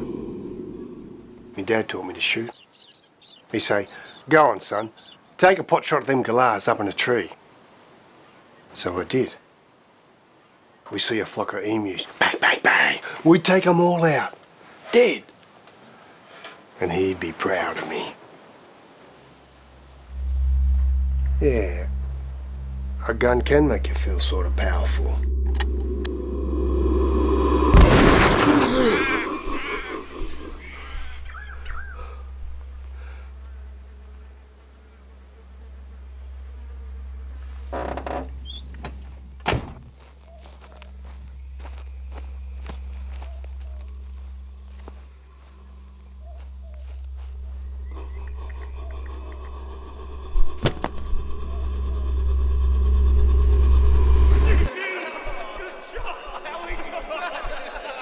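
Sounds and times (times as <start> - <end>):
low steady drone: 0.0 - 2.3, 19.7 - 39.5, 40.8 - 54.7
sharp cracks: 27.7 - 30.4.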